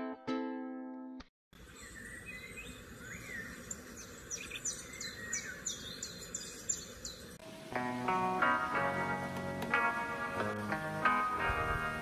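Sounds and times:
birds chirping: 0:01.6 - 0:08.8
steady background hiss: 0:01.6 - 0:12.0.

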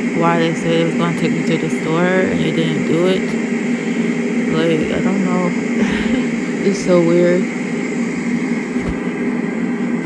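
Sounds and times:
steady droning hum: 0:00.0 - 0:10.0.

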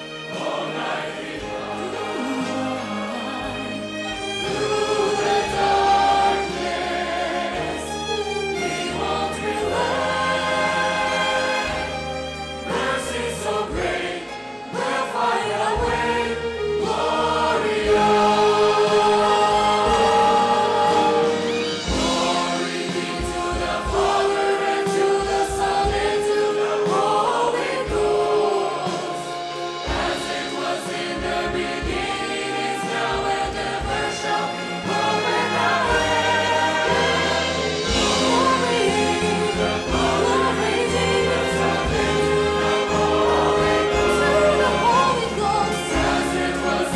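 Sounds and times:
choir singing long notes: 0:00.0 - 0:46.9
orchestral accompaniment: 0:00.0 - 0:46.9.

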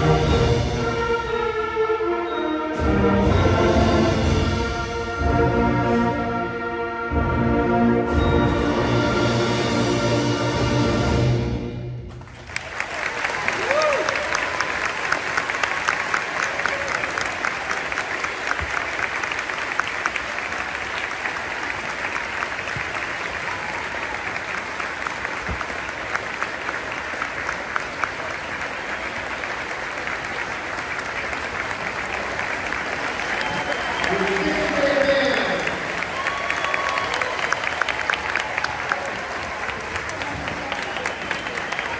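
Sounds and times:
audience applauding: 0:12.1 - 0:41.9.

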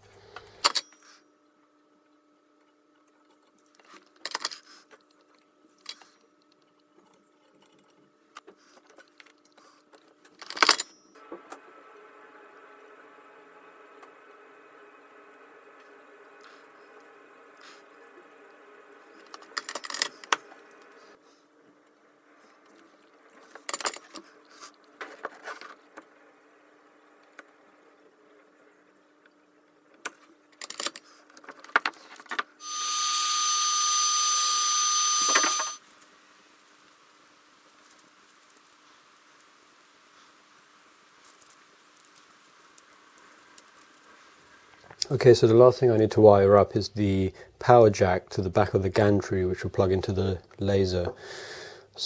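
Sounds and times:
faint steady hum: 0:00.0 - 0:52.0
low steady hiss: 0:32.0 - 0:52.0.

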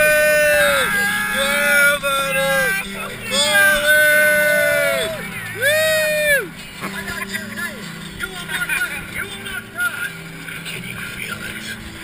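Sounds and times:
riders calling out: 0:00.0 - 0:07.0.

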